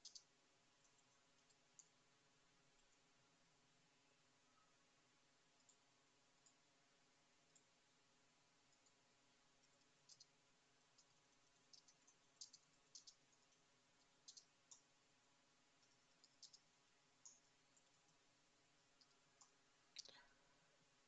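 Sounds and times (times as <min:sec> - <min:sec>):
faint sharp clicks: 0:00.0 - 0:02.0, 0:09.6 - 0:14.9, 0:15.8 - 0:18.2.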